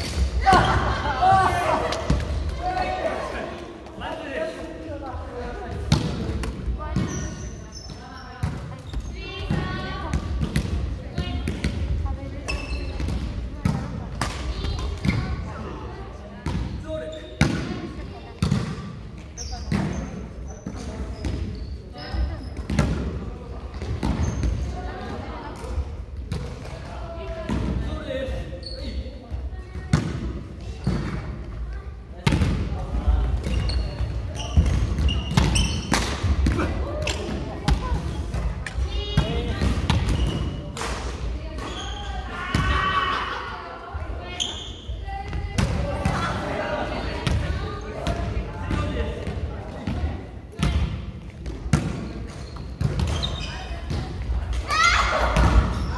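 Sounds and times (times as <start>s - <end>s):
players' voices: 0.0s - 55.9s.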